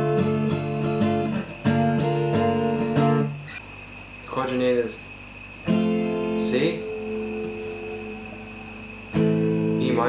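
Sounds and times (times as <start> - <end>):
acoustic guitar chord strummed: 0.0 - 10.0.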